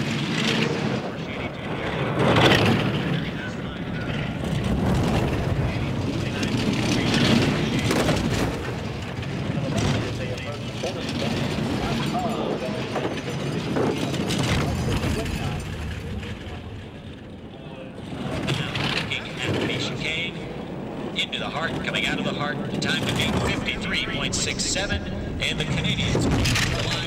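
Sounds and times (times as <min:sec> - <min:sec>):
bobsled runners rumbling over ice: 0:00.0 - 0:27.0.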